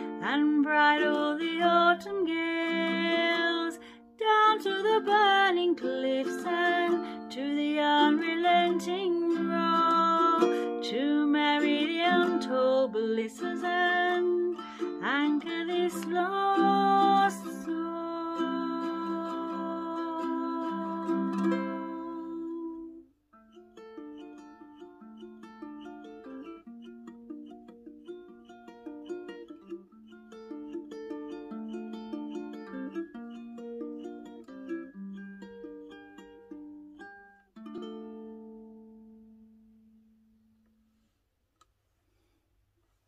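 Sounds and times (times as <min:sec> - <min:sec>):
ukulele chord ringing: 0:00.0 - 0:40.3
fingerpicked ukulele melody: 0:00.0 - 0:40.8.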